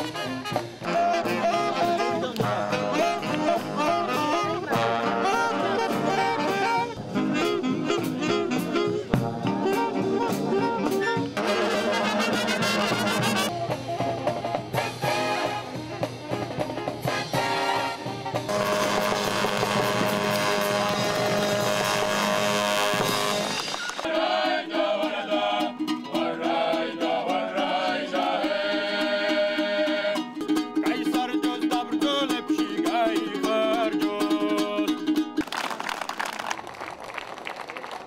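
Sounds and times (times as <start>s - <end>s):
military brass band playing: 0.0s - 25.6s
group singing: 24.0s - 35.1s.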